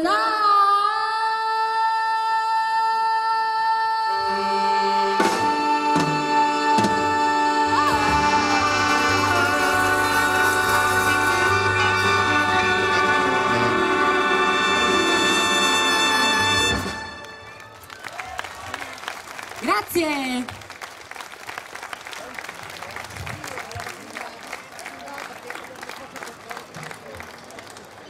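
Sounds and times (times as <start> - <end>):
woman singing: 0.0 - 13.3
big band playing: 4.1 - 18.0.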